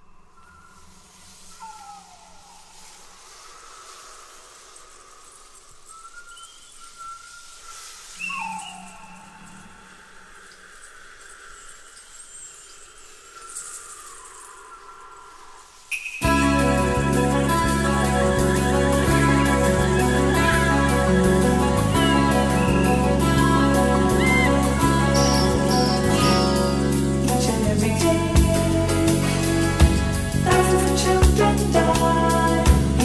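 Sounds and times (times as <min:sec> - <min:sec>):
bird-like calls: 0:00.0 - 0:16.6, 0:19.4 - 0:26.7
steady hiss: 0:00.0 - 0:33.0.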